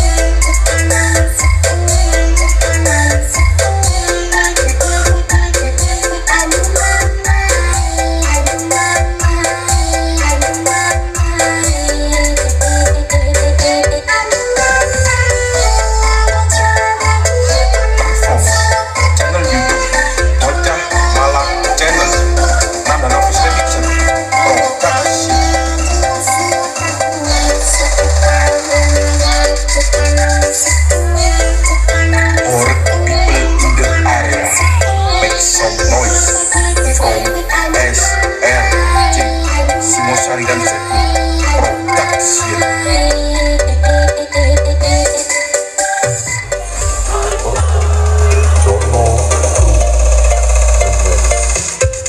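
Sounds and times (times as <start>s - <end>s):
heavy bass notes: 0.0s - 45.2s, 46.0s - 52.0s
loud electronic dance music: 0.0s - 52.0s
synth melody: 0.0s - 52.0s.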